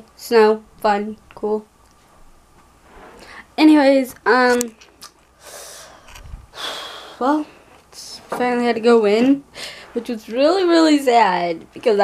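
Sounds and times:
person breathing noisily: 5.4 - 7.7, 9.5 - 10.0.

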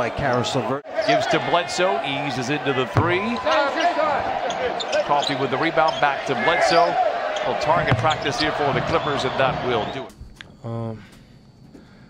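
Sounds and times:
crowd noise: 0.0 - 10.1
basketball bouncing: 2.9 - 6.3, 7.3 - 10.1
ball hitting rim: 2.9 - 6.8, 7.4 - 10.1
sneakers squeaking on court: 2.9 - 10.1.

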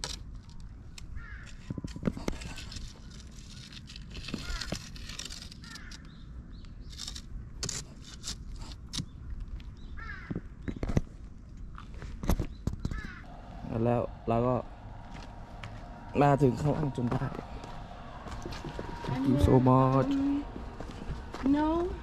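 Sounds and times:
forest background: 0.4 - 22.0
harsh cawing bird calls: 1.2 - 1.5, 4.4 - 4.8, 5.6 - 6.2, 9.9 - 10.4, 12.8 - 16.2.

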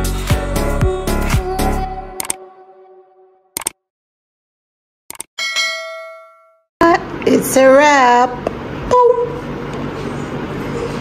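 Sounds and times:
quick clicks: 3.6 - 3.8, 5.1 - 5.3
bright bell chime: 5.4 - 6.6.

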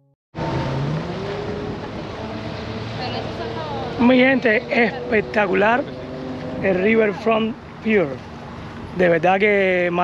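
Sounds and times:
dense outdoor noise: 0.4 - 10.0.

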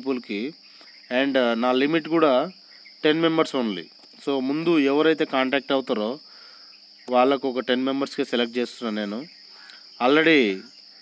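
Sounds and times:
man talking: 0.0 - 6.2, 7.1 - 9.3, 10.0 - 10.7
high-pitched hiss: 0.0 - 11.0.

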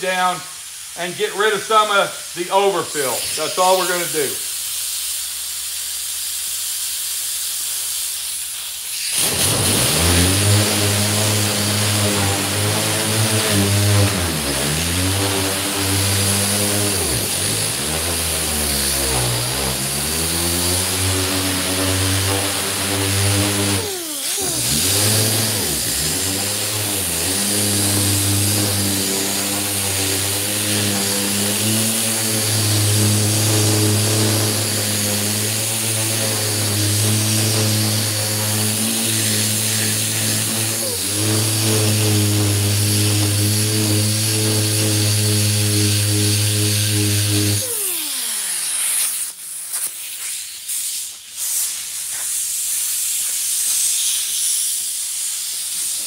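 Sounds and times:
air sander humming and hissing: 0.0 - 4.6, 7.6 - 50.2.

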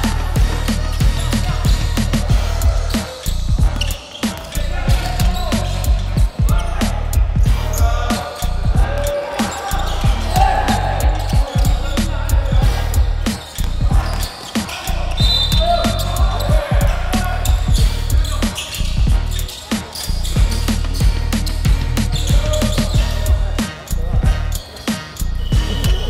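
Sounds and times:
music with heavy bass beat: 0.0 - 26.0.

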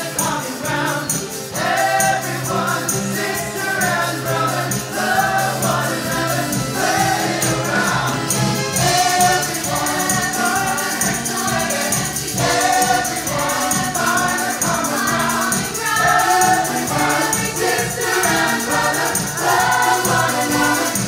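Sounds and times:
band with steady beat: 0.0 - 21.0
choir singing upbeat gospel: 0.0 - 21.0.

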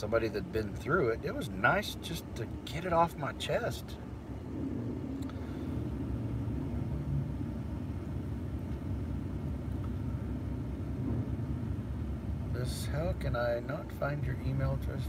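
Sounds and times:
car engine idling: 0.0 - 15.0.

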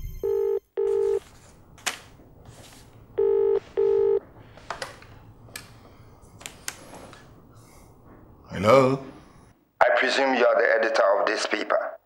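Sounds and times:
telephone ringing: 0.0 - 1.2, 3.2 - 4.2.

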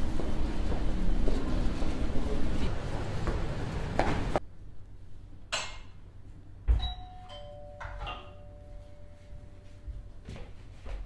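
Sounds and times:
two-note doorbell chime: 6.7 - 10.3.

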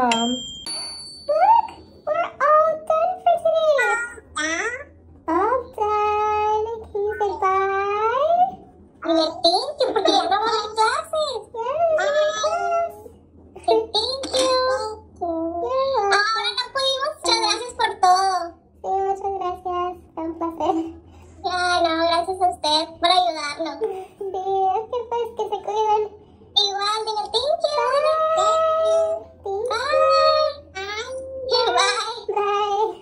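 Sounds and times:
child singing: 1.3 - 33.0.

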